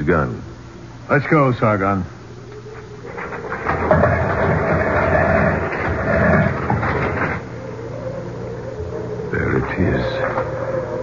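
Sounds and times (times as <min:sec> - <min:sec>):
heavy stone door scraping: 0:03.1 - 0:07.6.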